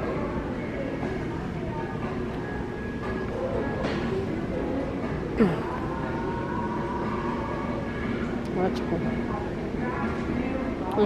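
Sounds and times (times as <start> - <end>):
faint musical tones: 0.0 - 11.0.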